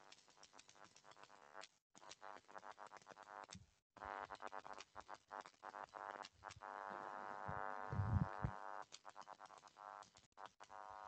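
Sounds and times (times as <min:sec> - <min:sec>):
steady buzzing tone: 0:02.4 - 0:11.0
low thumps: 0:07.9 - 0:08.5.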